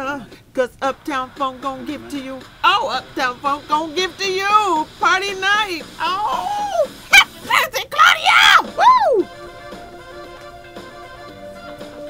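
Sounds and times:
woman's falsetto yelps: 0:06.2 - 0:09.3.

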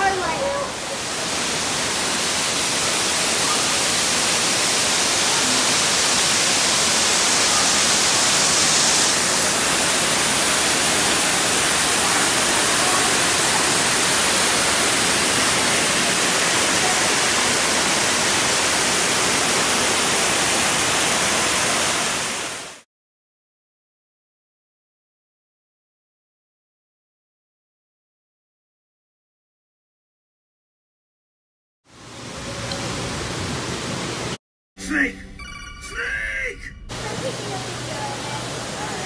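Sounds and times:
waterfalls pouring into pool: 0:00.0 - 0:22.8, 0:36.9 - 0:39.0.

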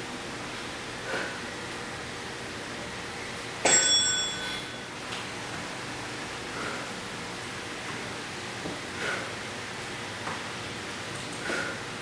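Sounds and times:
timer bell ding: 0:03.6 - 0:04.8.

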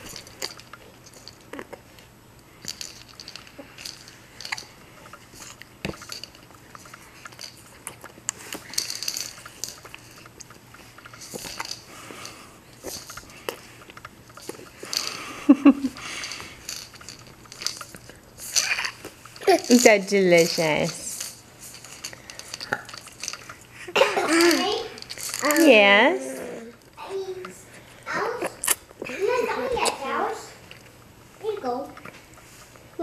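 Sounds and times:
baby voiced sound: 0:25.5 - 0:26.8
baby mouth clicks: 0:28.6 - 0:28.8.

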